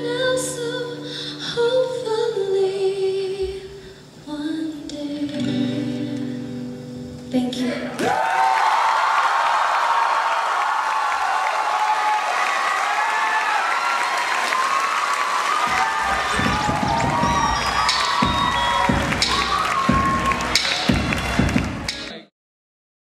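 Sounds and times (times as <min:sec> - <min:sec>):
audience cheering and applauding: 0:08.0 - 0:22.2
heavy thumps: 0:15.7 - 0:19.3.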